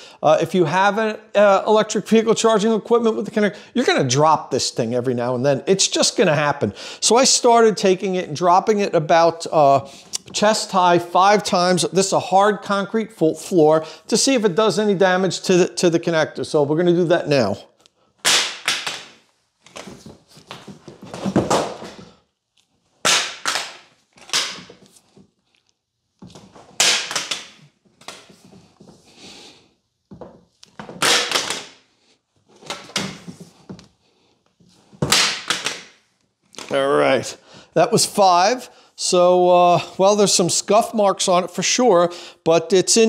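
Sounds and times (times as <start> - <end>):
cable handling noise: 18.6 - 28.9, 32.5 - 36.8.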